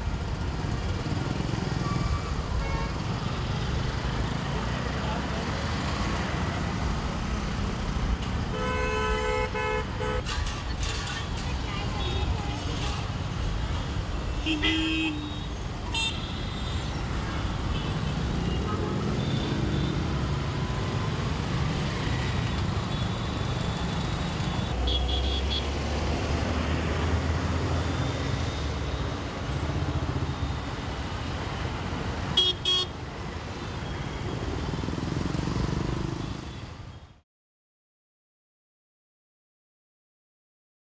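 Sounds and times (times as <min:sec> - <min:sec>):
road traffic rumble: 0:00.0 - 0:37.2
vehicle horns honking: 0:08.5 - 0:10.4, 0:14.3 - 0:17.0, 0:24.8 - 0:25.7, 0:32.4 - 0:32.9.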